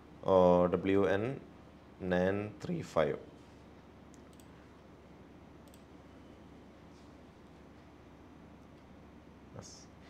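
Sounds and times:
computer input clicks: 4.1 - 4.5, 5.6 - 5.9.

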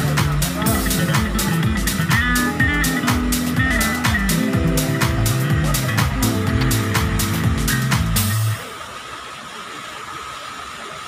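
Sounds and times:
fountain jets splashing into pool: 0.0 - 11.0.

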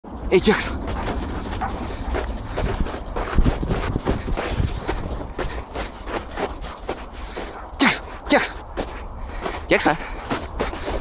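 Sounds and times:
footsteps crunching in snow: 0.1 - 11.0
wind buffeting microphone: 0.1 - 11.0.

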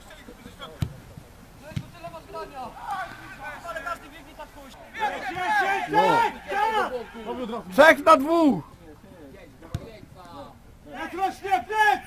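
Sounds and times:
football being kicked: 0.8 - 2.0, 9.6 - 10.0
players shouting: 1.6 - 8.8, 9.7 - 12.0.

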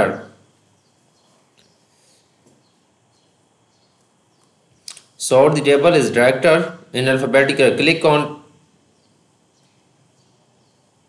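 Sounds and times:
person speaking: 0.0 - 0.4, 4.9 - 8.5
faint room hiss: 0.0 - 11.0.

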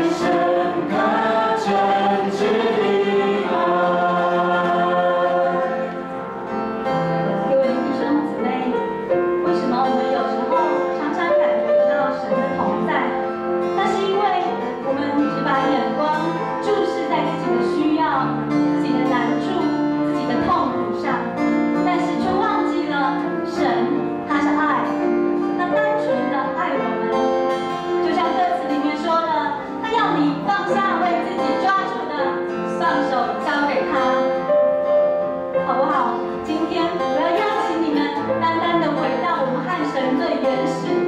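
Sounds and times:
worship team singing: 0.0 - 6.2
acoustic guitar: 0.0 - 41.0
piano: 0.0 - 41.0.

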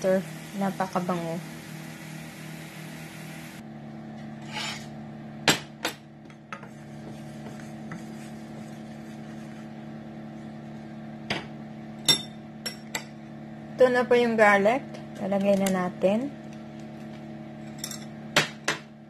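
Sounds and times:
spoon scraping a steel skillet: 4.4 - 4.9.

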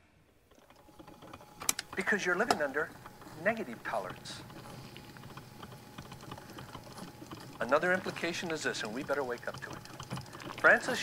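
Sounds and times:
person speaking: 1.9 - 4.9, 7.5 - 11.0.

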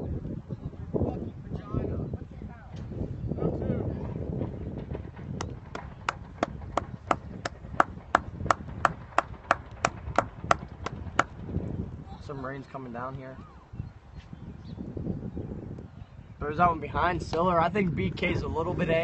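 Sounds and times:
outdoor background murmur: 0.0 - 18.8
distant voices: 2.1 - 14.1
sharp taps: 5.4 - 11.4.

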